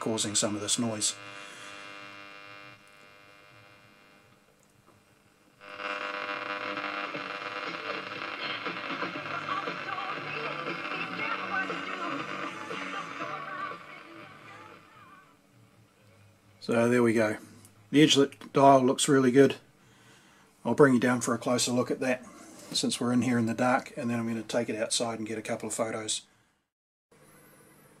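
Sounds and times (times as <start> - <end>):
electrical interference buzz: 0.0 - 15.9
music through radio speaker: 5.6 - 15.4.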